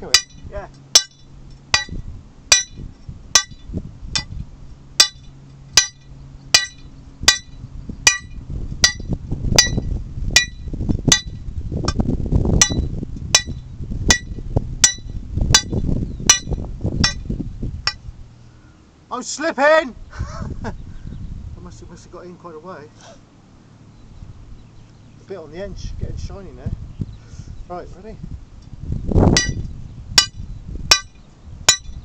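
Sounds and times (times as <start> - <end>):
hammer striking steel rod: 0.2 - 2.8, 3.4 - 3.6, 5.0 - 9.8, 10.4 - 11.4, 12.6 - 15.7, 16.3 - 17.2, 29.4 - 29.6, 30.2 - 32.0.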